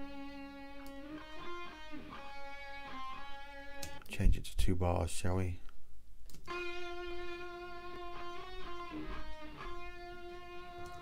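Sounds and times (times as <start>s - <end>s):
guitar with tremolo effect: 0.0s - 4.0s, 6.5s - 11.0s.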